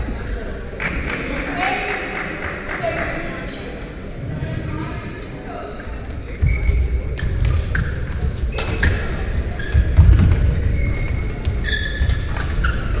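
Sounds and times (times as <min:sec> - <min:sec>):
shoe squeaks: 0:06.3 - 0:10.1, 0:10.7 - 0:13.0
footfalls on court floor: 0:06.4 - 0:11.7.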